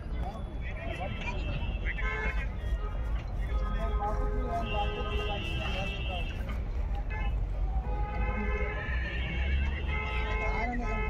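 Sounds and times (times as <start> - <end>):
busy fair noise: 0.0 - 11.0.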